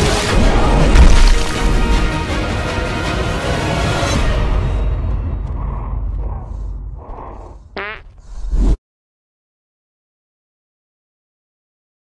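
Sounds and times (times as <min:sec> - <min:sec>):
cinematic score deep rumble: 0:01.7 - 0:08.7.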